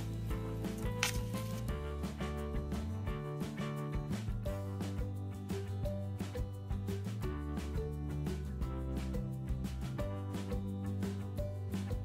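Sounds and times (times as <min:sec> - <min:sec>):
music with held notes and beat: 0:00.0 - 0:12.0.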